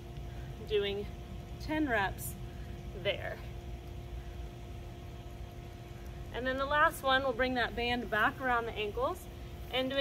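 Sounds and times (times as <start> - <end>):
faint constant hum: 0.0 - 10.0
low background rumble: 0.0 - 10.0.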